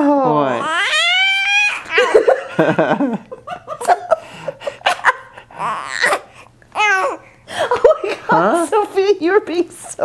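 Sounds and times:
baby cooing and babbling: 0.0 - 2.0, 5.6 - 7.3.

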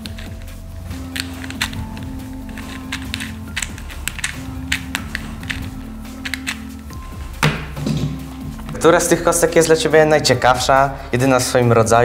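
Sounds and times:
plastic clicks of puzzle cube turning: 0.0 - 6.6
background music: 0.0 - 12.0.

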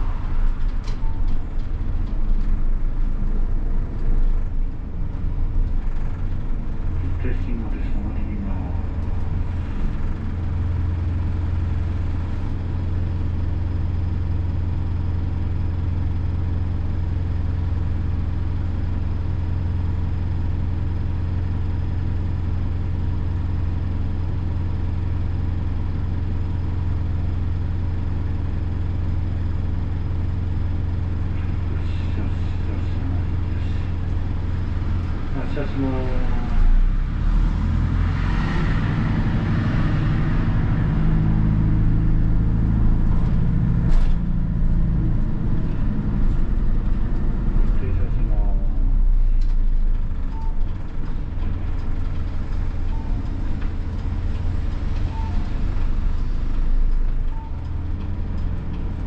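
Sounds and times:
diesel bus engine idling: 0.0 - 59.0.

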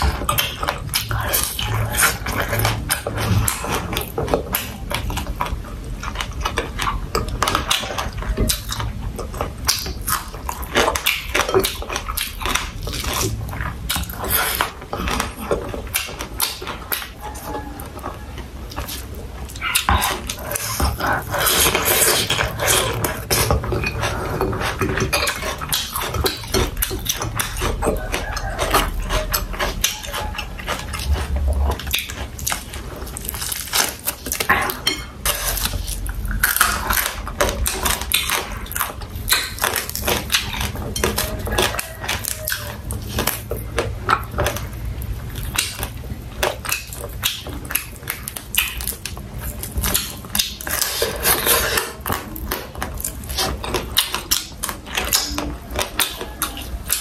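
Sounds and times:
chewing and crunching fried food: 0.0 - 57.0
wet mouth sounds: 0.0 - 57.0.

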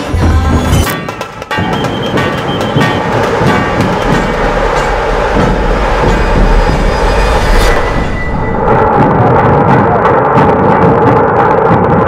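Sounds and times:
deep bass drum beat: 0.0 - 12.0
fast stick-beaten drum roll: 0.1 - 11.0.

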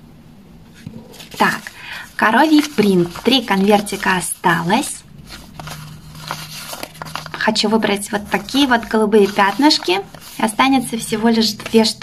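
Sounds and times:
faint low hum: 0.0 - 12.0
paper envelopes rustling: 1.0 - 12.0.

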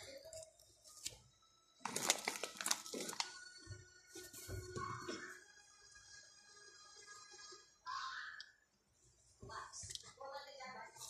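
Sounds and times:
milk pouring into tea: 1.8 - 4.3.

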